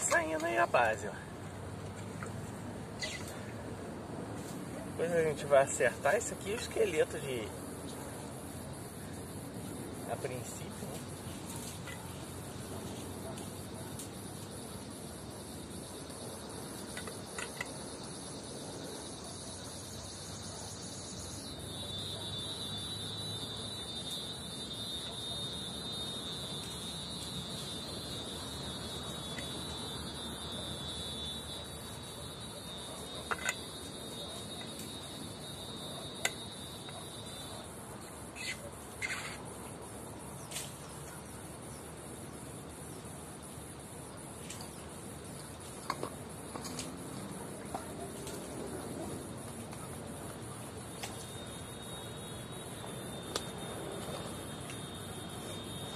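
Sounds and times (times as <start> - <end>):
insects trilling: 0.0 - 55.9.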